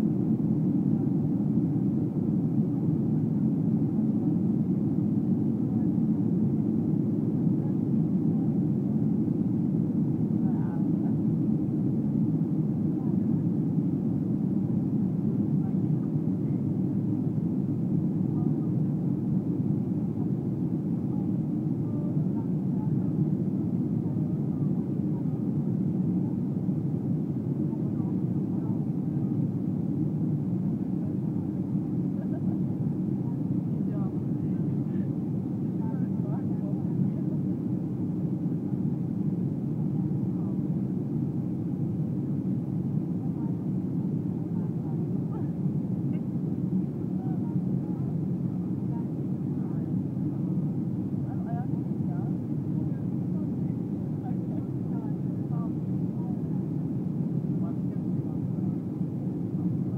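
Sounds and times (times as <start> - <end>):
jet cabin engine rumble: 0.0 - 59.9
faint voices: 27.2 - 41.0.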